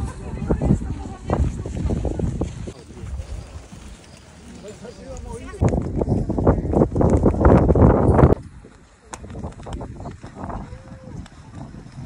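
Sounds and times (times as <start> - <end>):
flag flapping in wind: 0.0 - 12.0
wind buffeting microphone: 0.0 - 12.0.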